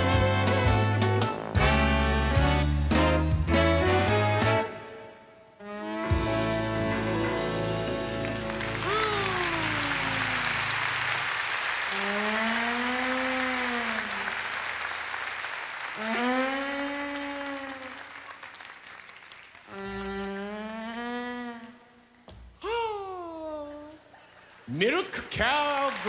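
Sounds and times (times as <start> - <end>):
western swing band with fiddle: 0.0 - 4.8, 5.8 - 8.6
audience applauding: 7.7 - 20.4, 24.4 - 26.0.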